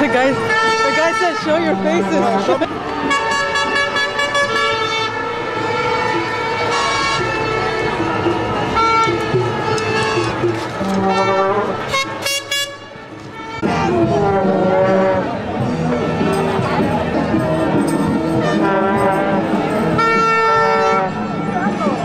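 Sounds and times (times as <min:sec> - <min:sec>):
horns blowing long blasts: 0:00.0 - 0:22.0
street crowd voices: 0:00.0 - 0:22.0.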